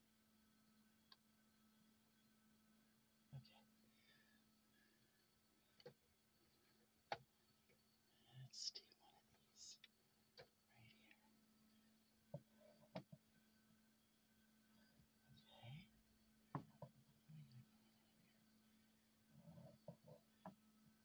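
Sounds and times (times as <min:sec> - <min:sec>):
faint low hum: 0:00.0 - 0:21.0
breathy whispering: 0:03.3 - 0:04.4, 0:08.1 - 0:09.9, 0:10.7 - 0:11.4, 0:14.8 - 0:16.0, 0:17.2 - 0:18.4
soft clicks of eggs: 0:05.6 - 0:07.9, 0:08.6 - 0:11.4.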